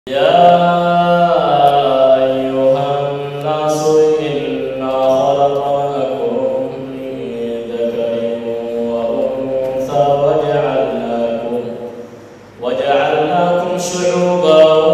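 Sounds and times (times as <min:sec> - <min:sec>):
man chanting unaccompanied: 0:00.1 - 0:14.9.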